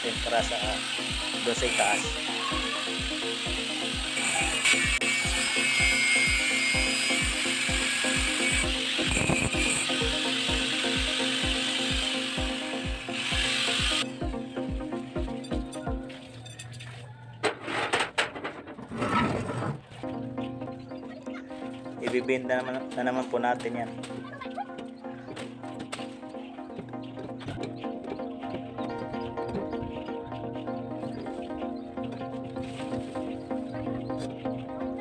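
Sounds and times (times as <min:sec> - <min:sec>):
angle grinder cutting steel: 0:00.0 - 0:14.2.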